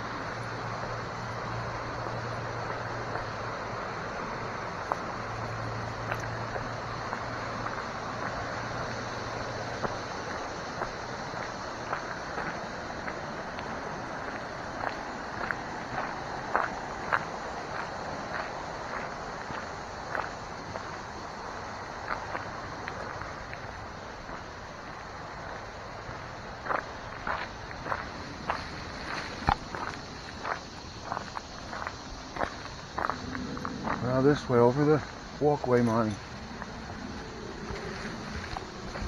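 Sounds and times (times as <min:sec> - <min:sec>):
footsteps on gravel trail: 0:00.1 - 0:39.0
low hum: 0:32.1 - 0:35.4.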